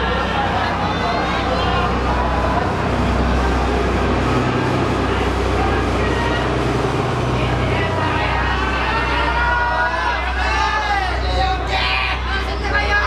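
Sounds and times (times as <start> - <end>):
crowd talking: 0.0 - 13.0
train rolling past: 0.0 - 13.0.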